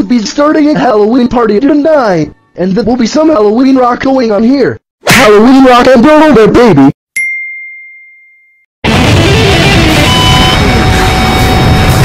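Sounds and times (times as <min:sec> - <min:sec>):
high-pitched ding: 0:07.2 - 0:08.7
heavy rock music: 0:08.8 - 0:12.0.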